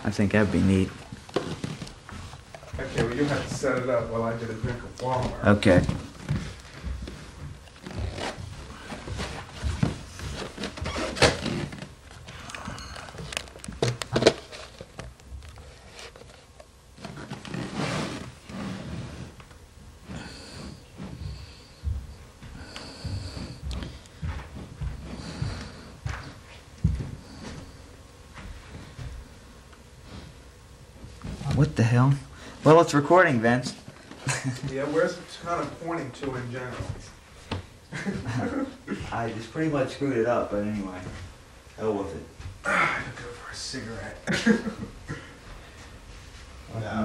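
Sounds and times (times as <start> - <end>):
camcorder handling knocks and rustles: 13.3 - 16.3.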